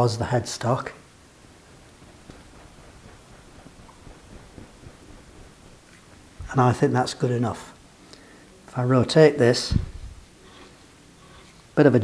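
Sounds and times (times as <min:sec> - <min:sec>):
faint room hiss: 0:00.0 - 0:12.0
lathe slide ticks and rustles: 0:01.4 - 0:06.7.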